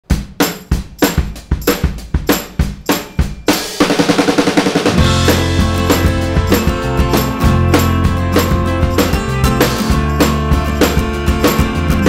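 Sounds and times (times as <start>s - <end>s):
drum kit beat: 0.0s - 12.0s
rock band playing: 3.2s - 12.0s.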